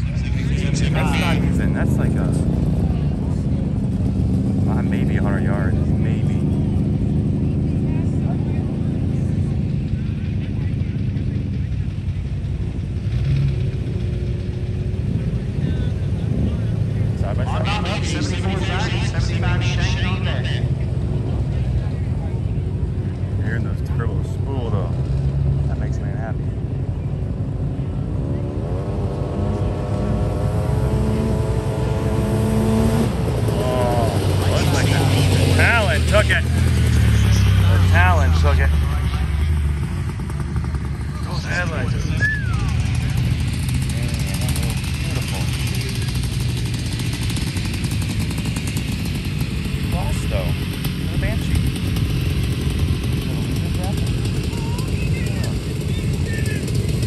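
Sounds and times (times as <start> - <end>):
race engine accelerating: 0.0 - 57.0.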